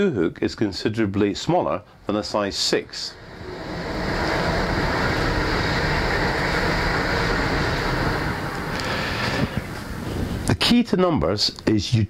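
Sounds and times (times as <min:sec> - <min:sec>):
loud steady rushing noise: 0:03.1 - 0:10.5.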